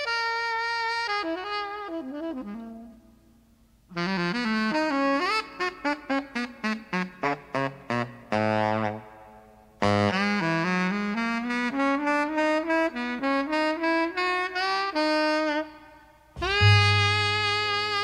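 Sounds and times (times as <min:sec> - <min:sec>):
saxophone playing jazz: 0:00.0 - 0:03.1, 0:03.9 - 0:09.1, 0:09.8 - 0:18.0.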